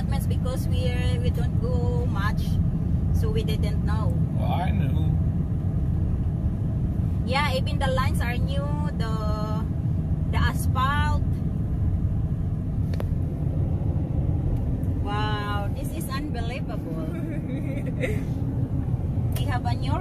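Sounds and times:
truck engine and road rumble: 0.0s - 20.0s.

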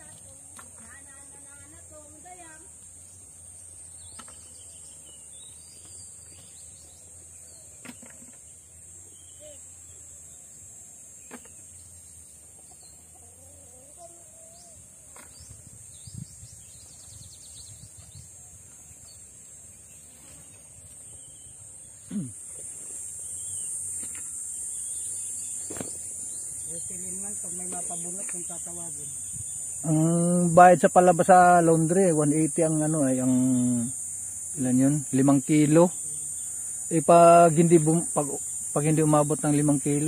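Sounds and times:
high-pitched insect drone: 6.4s - 14.9s, 17.6s - 40.0s
sharp thump: 25.6s - 26.0s.

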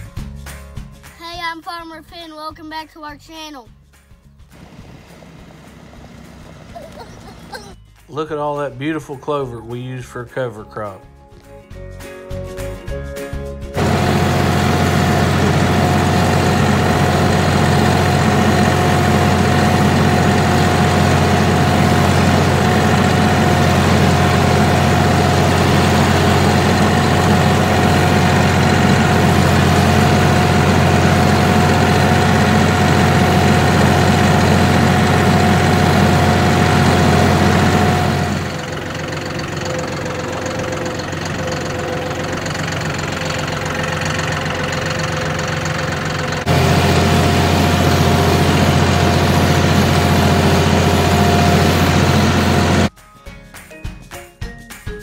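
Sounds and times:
tractor diesel engine under load: 4.6s - 7.8s, 13.8s - 52.9s.

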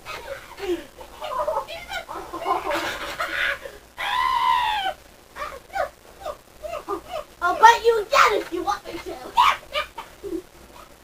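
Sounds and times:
people shrieking and grunting: 0.0s - 7.3s, 8.1s - 11.0s
long high scream: 4.0s - 5.0s.

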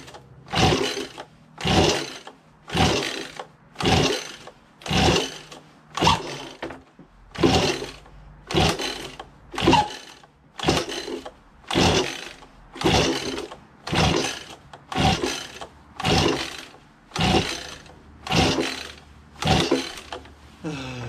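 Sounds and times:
recoil starter rope pulls: 0.0s - 20.6s.

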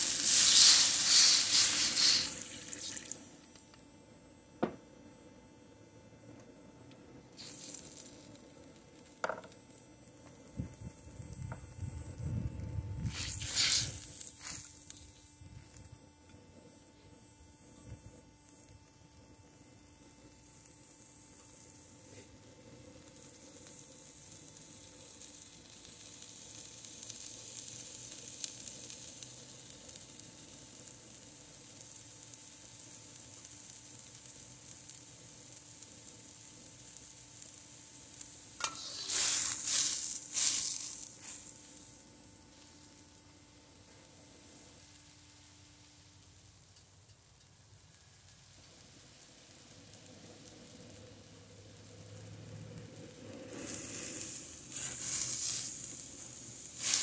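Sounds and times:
sharp burst of noise: 0.0s - 3.5s, 7.3s - 8.4s, 10.0s - 15.7s, 38.0s - 42.8s, 49.7s - 57.0s
vegetables sizzling in hot oil: 0.0s - 3.6s, 7.3s - 15.8s, 20.0s - 57.0s.

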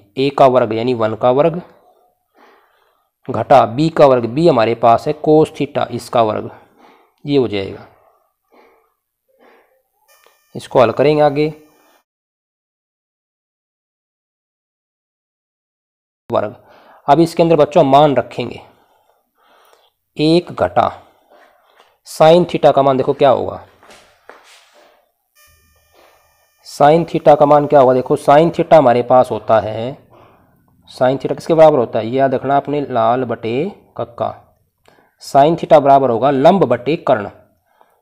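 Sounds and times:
faint high-pitched tone: 10.0s - 12.0s, 25.4s - 28.7s.

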